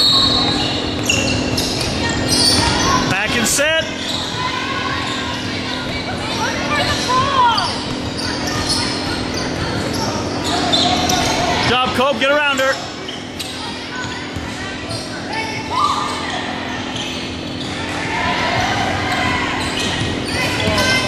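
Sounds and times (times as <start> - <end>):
echoing voices: 0.0 - 21.0
sneakers squeaking: 0.0 - 21.0.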